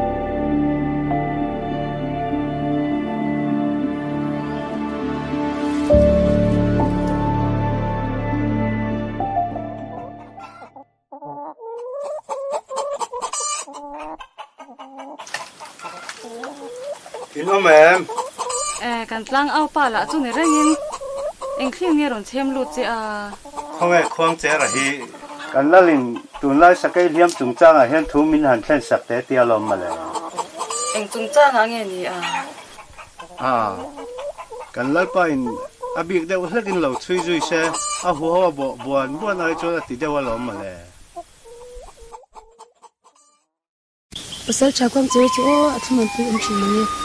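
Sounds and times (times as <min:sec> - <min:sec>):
chickens clucking: 0:09.8 - 0:43.5, 0:44.2 - 0:47.0
background hiss: 0:15.2 - 0:42.2, 0:44.1 - 0:47.0
man speaking: 0:17.4 - 0:18.2, 0:23.8 - 0:30.1, 0:33.4 - 0:33.9, 0:34.8 - 0:40.9.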